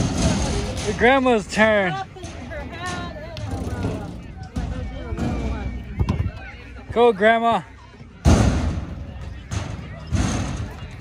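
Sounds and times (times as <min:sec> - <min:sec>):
background voices chattering: 0:00.0 - 0:11.0.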